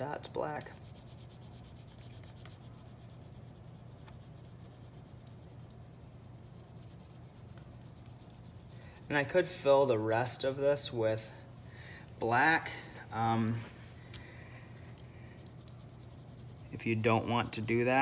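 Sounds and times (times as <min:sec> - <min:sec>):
oil pastel rubbing on paper: 0:00.7 - 0:09.3, 0:15.4 - 0:17.9.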